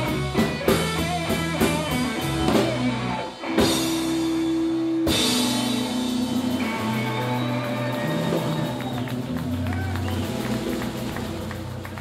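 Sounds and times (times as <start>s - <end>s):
bass guitar low notes: 0.0s - 12.0s
electric guitar sustained notes: 0.0s - 12.0s.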